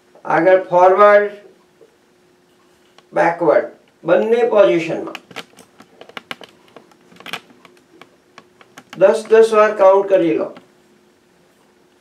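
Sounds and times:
faint steady hum: 0:00.0 - 0:12.0
light clicks and taps: 0:05.1 - 0:09.4.

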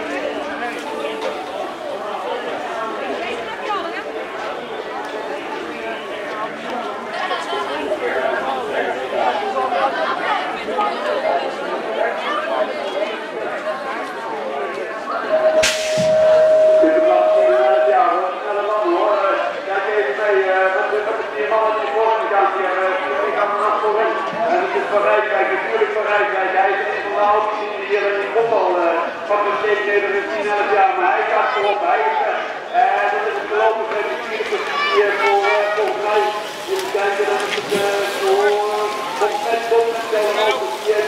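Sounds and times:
spectators chattering: 0:00.0 - 0:41.0
steady electronic tone: 0:15.3 - 0:18.7
metal gate banging down: 0:15.4 - 0:16.9.

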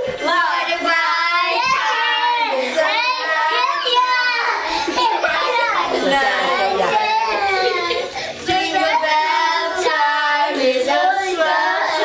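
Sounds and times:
girls singing together: 0:00.0 - 0:12.0.

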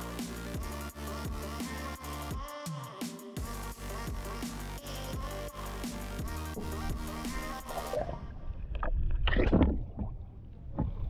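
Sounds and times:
background music: 0:00.0 - 0:08.3.

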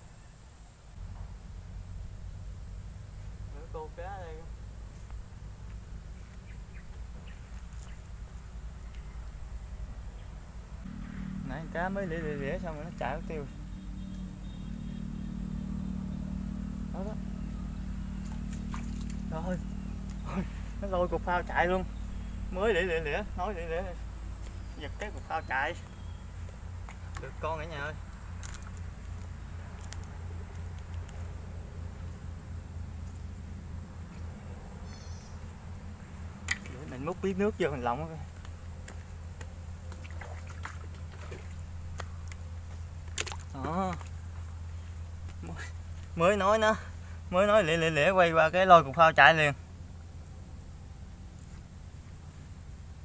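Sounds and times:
distant engine drone: 0:00.0 - 0:53.0
steady low hum: 0:00.0 - 0:53.0
thin high whine: 0:10.8 - 0:24.9
bucket splashing in water: 0:18.2 - 0:19.3, 0:39.9 - 0:41.6, 0:43.1 - 0:44.1.

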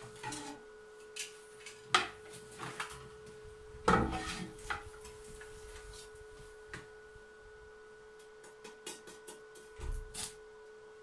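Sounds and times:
welder electrical whine: 0:00.0 - 0:11.0.

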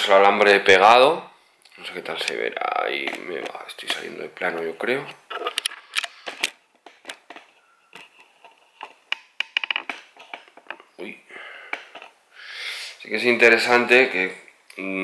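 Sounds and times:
metal wire clicking and ticking: 0:05.4 - 0:11.0.

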